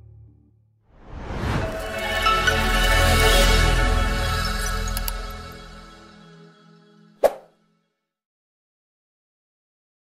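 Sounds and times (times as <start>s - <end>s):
short pop sound effect: 7.2s - 7.5s.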